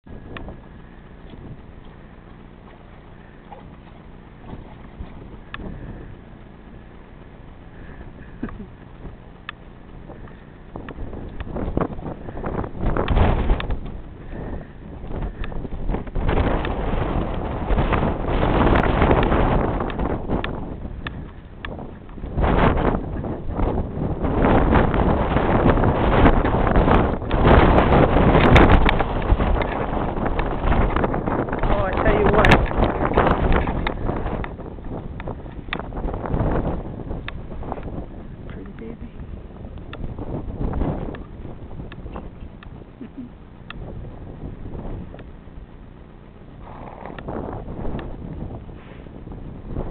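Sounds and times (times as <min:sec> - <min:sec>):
wind rumbling on microphone: 0:00.0 - 0:49.9.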